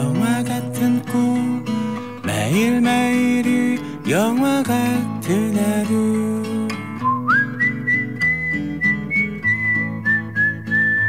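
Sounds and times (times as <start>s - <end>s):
strummed acoustic guitar: 0.0s - 11.0s
whistled melody: 6.9s - 11.0s.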